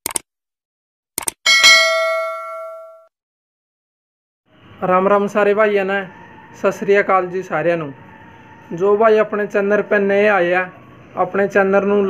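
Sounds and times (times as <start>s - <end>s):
bright bell ding: 1.5s - 3.1s.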